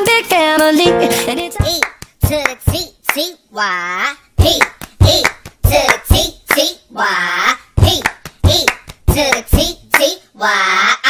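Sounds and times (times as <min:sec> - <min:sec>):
rhythmic hand claps: 0:01.6 - 0:03.3, 0:04.4 - 0:06.8, 0:07.8 - 0:10.2
sung vocals: 0:03.5 - 0:11.0.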